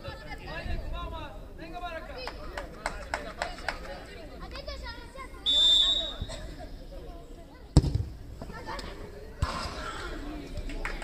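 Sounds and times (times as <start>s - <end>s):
referee whistle blast: 5.5s - 6.3s
football kicked with a thud: 7.8s - 8.1s.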